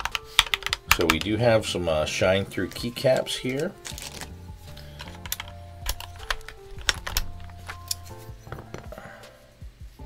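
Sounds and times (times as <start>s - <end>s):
plastic keycap clicks: 0.0s - 1.3s, 5.0s - 8.8s
background music with held notes: 0.0s - 10.0s.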